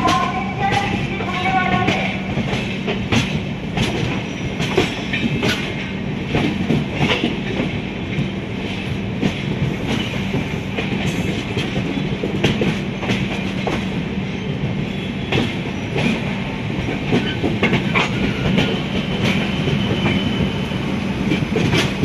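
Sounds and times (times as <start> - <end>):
train wheels clattering over rail joints: 0.0 - 20.6, 21.2 - 22.0.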